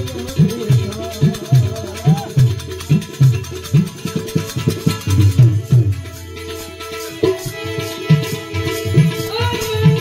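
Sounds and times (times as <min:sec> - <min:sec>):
dholak drum beating: 0:00.0 - 0:10.0
harmonium chords: 0:00.0 - 0:10.0.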